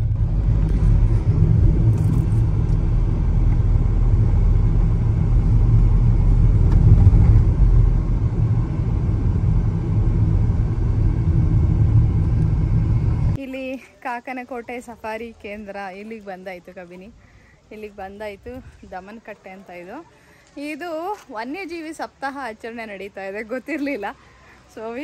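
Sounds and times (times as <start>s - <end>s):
car road rumble inside cabin: 0.0s - 13.4s.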